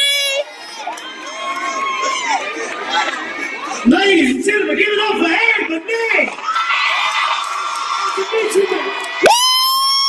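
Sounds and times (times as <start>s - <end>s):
audience cheering and screaming: 0.0s - 3.8s, 6.4s - 10.0s.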